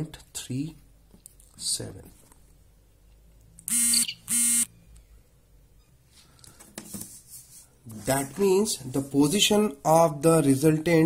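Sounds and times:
electronic buzzer beeps: 3.7 - 4.7.

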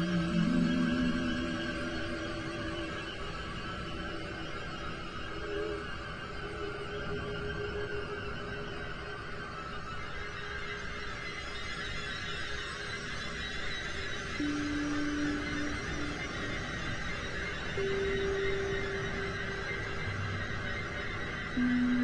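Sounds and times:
ambient synthesizer music: 0.0 - 9.6, 14.2 - 22.0.

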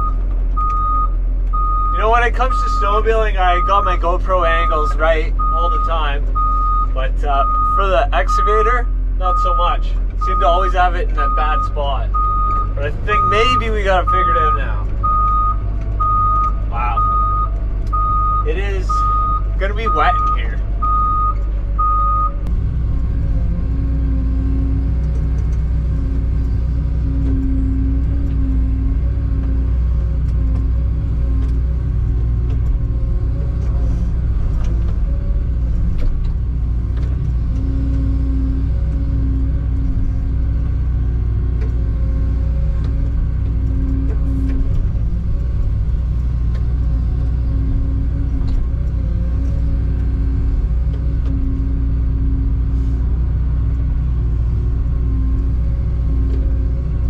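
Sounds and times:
excavator diesel engine running: 0.0 - 57.0.

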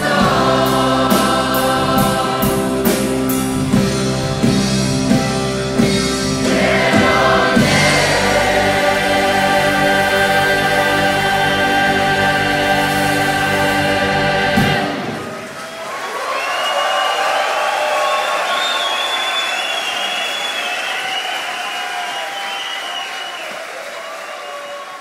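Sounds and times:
rock choir and band: 0.0 - 25.0
audience applauding and cheering: 14.6 - 25.0.

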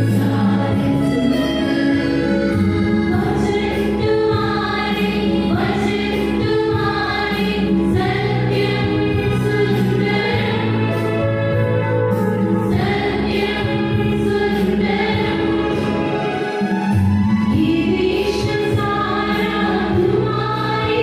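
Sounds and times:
choir singing a hymn: 0.0 - 16.9, 17.5 - 21.0.

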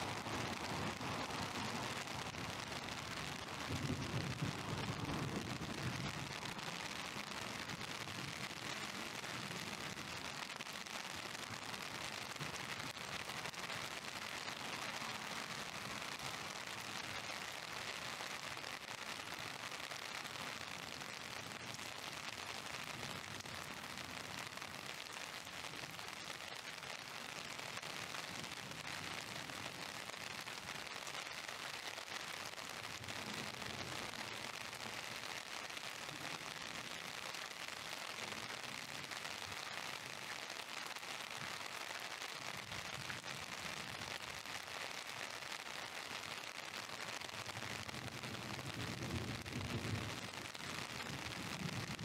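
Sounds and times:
heavy rain on street: 0.0 - 52.0.

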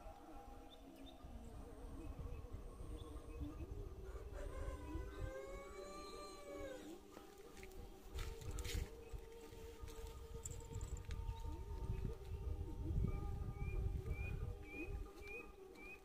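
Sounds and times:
wind rumble on microphone: 1.1 - 6.9, 7.8 - 15.5.

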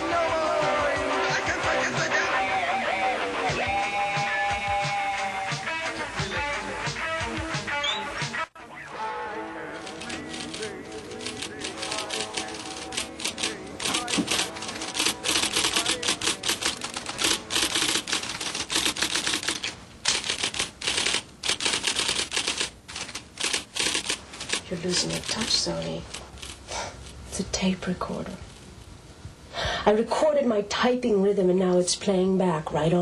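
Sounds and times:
music: 0.0 - 18.0
typewriter typing: 9.8 - 26.6.

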